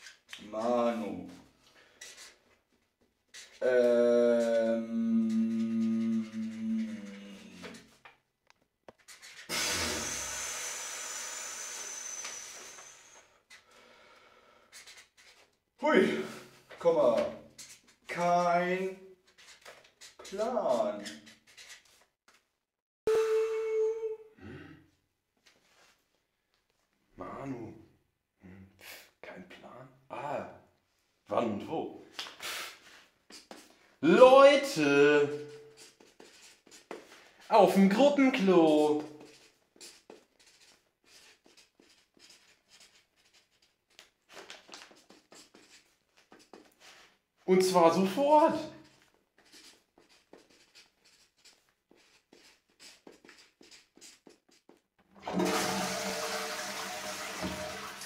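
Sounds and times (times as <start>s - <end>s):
man making wordless sounds: 0.4s - 1.4s, 3.6s - 7.8s, 15.8s - 17.5s, 20.2s - 21.1s, 23.1s - 24.6s, 34.0s - 35.6s, 37.5s - 39.3s, 47.5s - 48.8s
toilet flushing: 55.1s - 58.0s.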